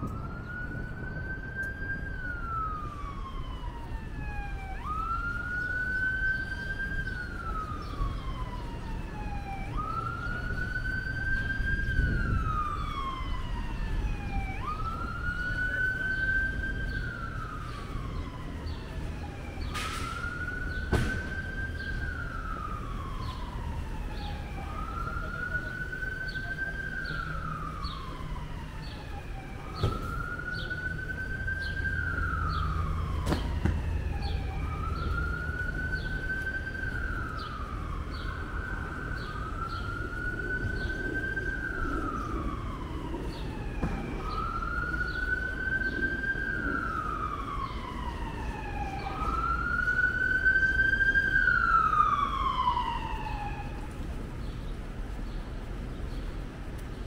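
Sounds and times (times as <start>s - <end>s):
emergency vehicle siren wailing: 0.0s - 57.0s
low rumble of city traffic: 0.0s - 57.0s.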